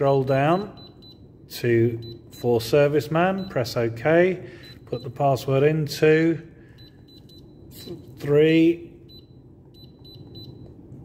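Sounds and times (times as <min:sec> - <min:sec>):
short high key beeps: 0:06.8 - 0:08.4, 0:09.1 - 0:10.7.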